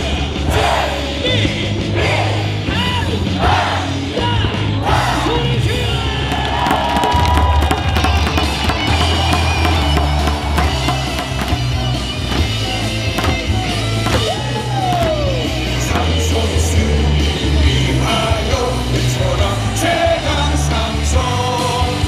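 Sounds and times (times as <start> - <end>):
crowd yelling and singing along: 0.0 - 22.0
rock cheer song over speakers: 0.0 - 22.0
person singing and shouting into microphone: 0.5 - 6.8.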